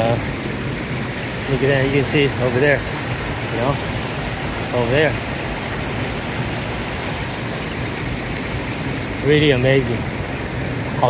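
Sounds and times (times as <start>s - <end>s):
stream water rushing over rocks: 0.0s - 11.0s.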